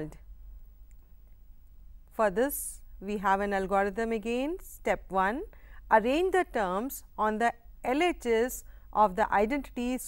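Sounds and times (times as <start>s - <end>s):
faint background hiss: 0.0s - 10.0s
low steady hum: 0.0s - 10.0s.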